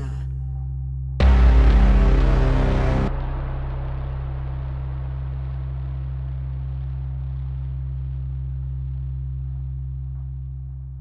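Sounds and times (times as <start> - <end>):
low steady drone: 0.0 - 11.0.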